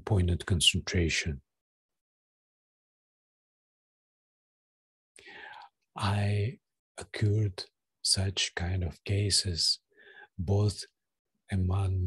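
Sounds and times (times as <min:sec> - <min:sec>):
man's soft breathy vocal sound: 0:05.2 - 0:05.7, 0:09.9 - 0:10.4.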